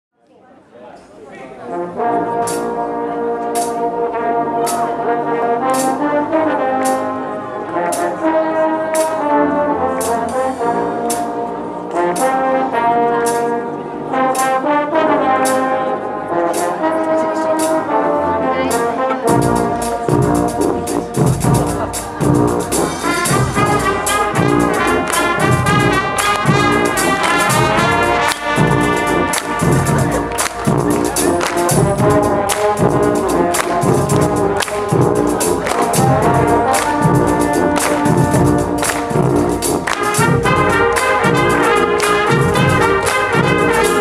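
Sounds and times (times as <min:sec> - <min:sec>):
brass band playing held chords: 0:01.6 - 0:44.0
drums playing busy pattern: 0:02.0 - 0:18.0, 0:18.6 - 0:44.0.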